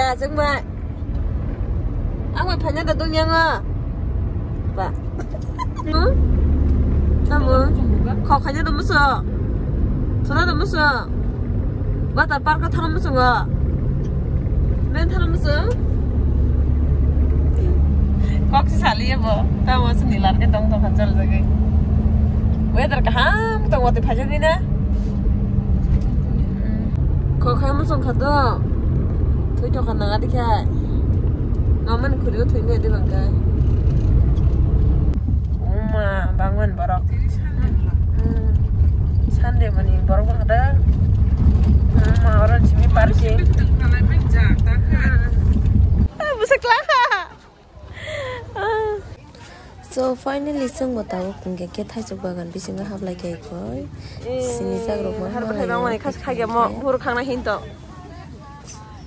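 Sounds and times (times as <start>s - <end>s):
low rumble of vehicle: 0.0s - 59.0s
people talking: 4.8s - 6.2s, 7.3s - 9.2s, 14.9s - 15.8s, 17.6s - 21.4s, 31.9s - 33.4s, 35.6s - 38.6s, 42.0s - 45.4s, 48.0s - 59.0s.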